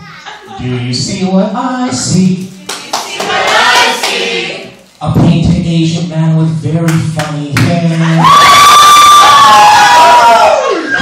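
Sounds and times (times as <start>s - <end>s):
crowd cheering: 7.9s - 11.0s.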